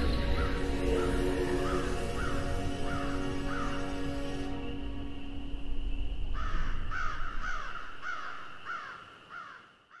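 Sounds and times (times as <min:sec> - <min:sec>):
crow cawing: 0:01.6 - 0:03.8, 0:06.4 - 0:10.0.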